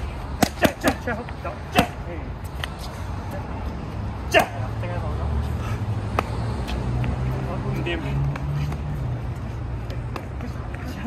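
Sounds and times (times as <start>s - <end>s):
boxing gloves hitting punch pads: 0.4s - 1.1s.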